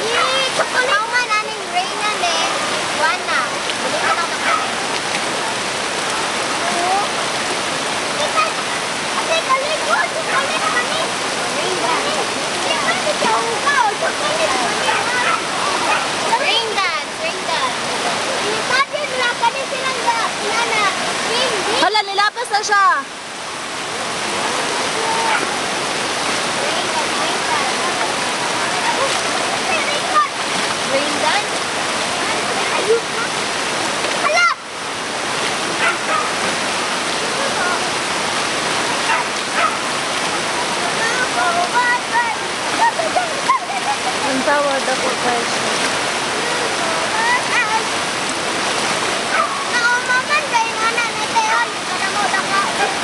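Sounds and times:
floodwater rushing: 0.0s - 53.0s.

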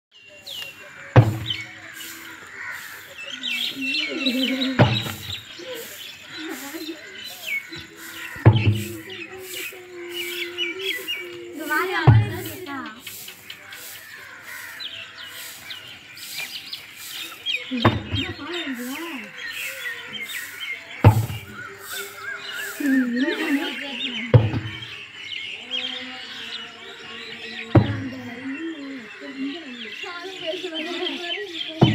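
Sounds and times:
small birds chirping: 0.1s - 31.9s
tyre thudding on dirt: 1.2s - 1.7s, 4.8s - 5.5s, 8.4s - 9.0s, 21.0s - 21.6s, 24.4s - 24.9s, 27.8s - 28.2s.

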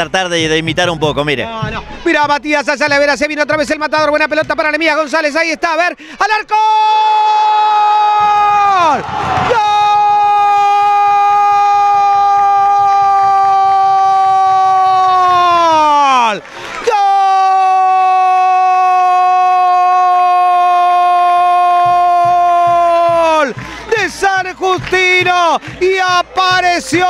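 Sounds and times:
man talking fast: 0.0s - 6.7s, 22.3s - 27.0s.

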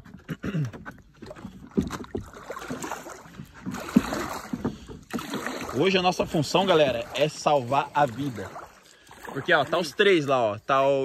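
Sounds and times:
paddle knocking on boat: 0.0s - 9.6s
paddle splashing in water: 0.0s - 11.0s.

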